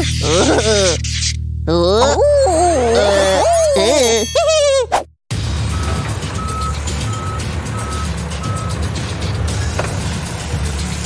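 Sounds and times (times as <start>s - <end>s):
truck engine rumbling: 0.0s - 11.0s
reversing alarm beeping: 5.7s - 8.9s.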